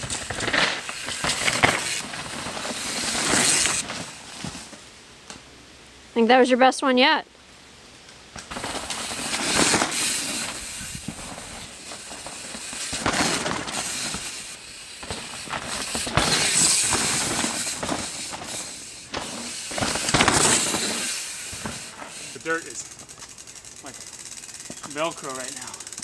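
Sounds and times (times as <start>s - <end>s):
bike clattering knocks: 0.0s - 5.4s, 8.3s - 22.3s
bike tyres rolling on dirt: 0.0s - 5.5s, 7.5s - 26.0s.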